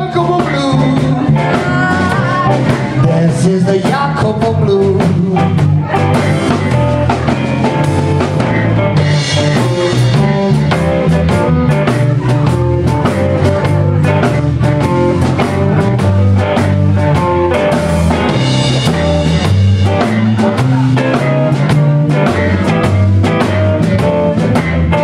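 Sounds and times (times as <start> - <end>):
bass guitar: 0.0 - 25.0
drum kit: 0.0 - 25.0
electric guitar: 0.0 - 25.0.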